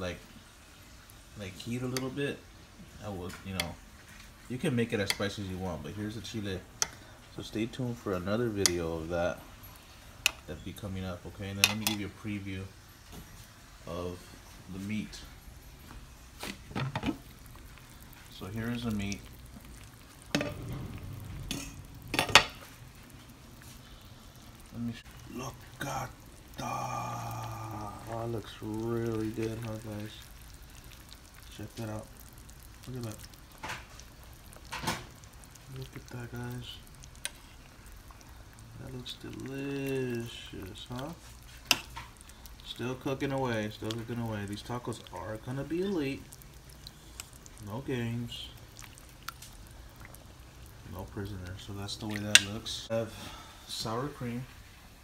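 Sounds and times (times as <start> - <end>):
low steady hum: 0.0 - 55.0
metal spoon stirring in a pot: 28.0 - 52.8.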